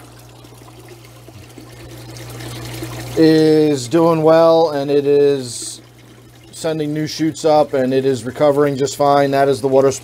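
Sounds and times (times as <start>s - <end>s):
water trickling and splashing: 0.0s - 10.0s.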